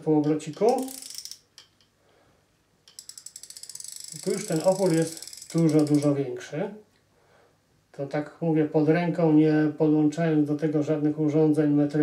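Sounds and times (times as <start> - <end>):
fast ratchet clicks of reel drag: 0.5 - 1.8, 2.9 - 6.2
reel drag knob clicking: 2.9 - 6.1.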